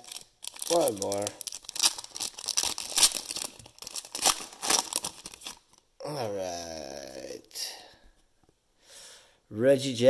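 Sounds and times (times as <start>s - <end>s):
wrapper crinkling and tearing: 0.0s - 5.8s.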